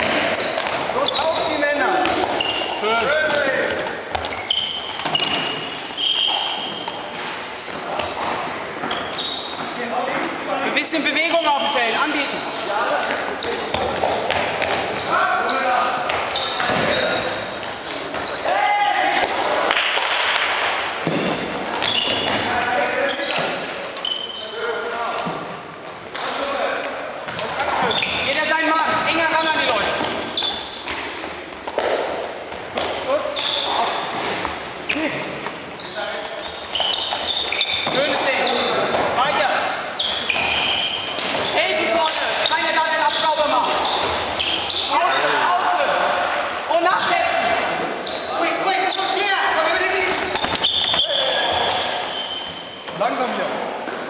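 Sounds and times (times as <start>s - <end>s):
footfalls on hall floor: 0.0s - 10.4s, 11.2s - 24.0s, 24.9s - 54.0s.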